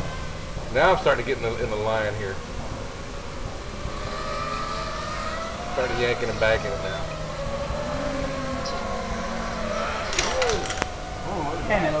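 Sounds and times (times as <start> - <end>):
low rumbling noise: 0.0 - 12.0
quadcopter propellers whining: 0.0 - 12.0.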